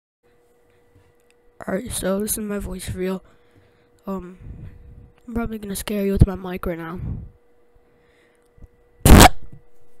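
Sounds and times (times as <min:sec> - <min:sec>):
loud distorted noise burst: 0:09.1 - 0:09.4.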